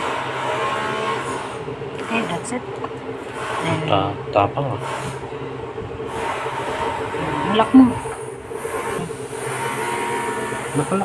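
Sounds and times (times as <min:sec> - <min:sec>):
mechanical hum with held tones: 0:00.0 - 0:11.0.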